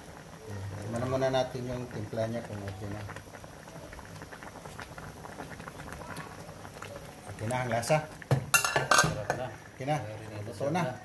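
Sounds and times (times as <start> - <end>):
broth boiling in a pan: 0.0 - 11.0.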